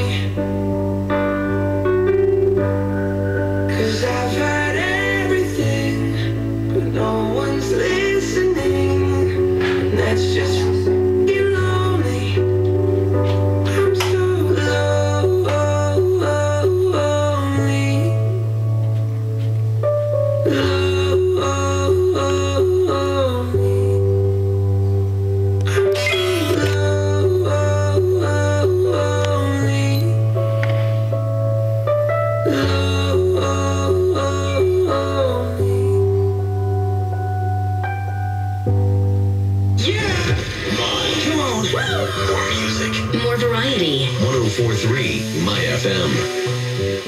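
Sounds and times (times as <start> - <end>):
pop song over loudspeaker: 0.0 - 31.2, 31.8 - 37.8, 39.7 - 47.0
radio music over loudspeaker: 3.7 - 12.5, 39.8 - 47.0.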